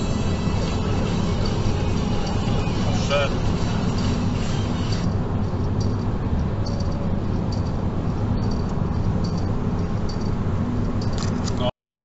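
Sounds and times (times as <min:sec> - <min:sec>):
car road and engine noise: 0:00.0 - 0:11.8.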